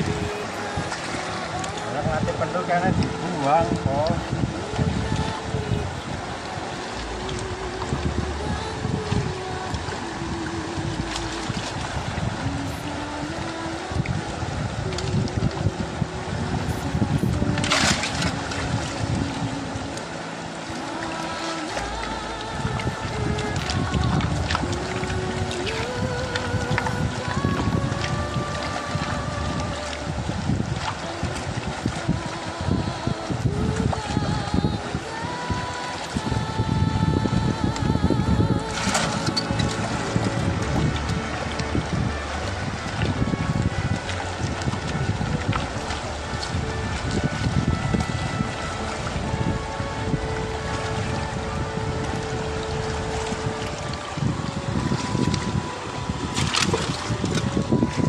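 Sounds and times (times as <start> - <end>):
background music melody: 0.0 - 58.0
wind on microphone: 0.0 - 58.0.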